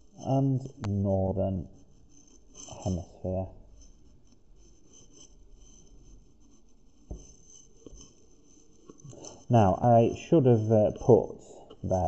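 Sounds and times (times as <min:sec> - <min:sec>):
pen scratching on paper: 0:00.0 - 0:03.1, 0:03.7 - 0:11.9
soft knock: 0:07.1 - 0:07.3.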